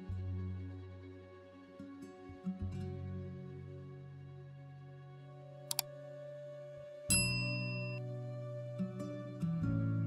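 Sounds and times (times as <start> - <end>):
soft background music: 0.0 - 10.0
notification ding: 7.1 - 8.0.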